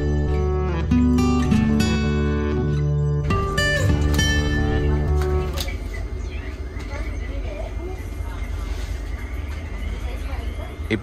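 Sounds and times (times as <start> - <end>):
faint voices: 4.2 - 11.0
train rumble: 4.2 - 11.0.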